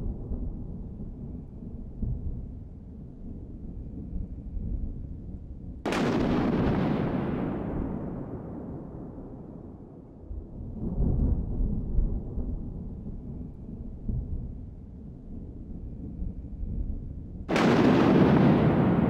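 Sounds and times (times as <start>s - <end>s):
steady low rumble: 0.0s - 19.0s
loud boom: 17.5s - 19.0s.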